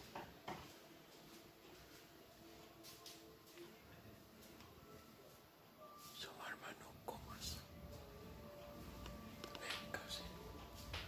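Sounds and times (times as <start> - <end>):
faint whispering: 6.0 - 7.9, 9.1 - 10.8.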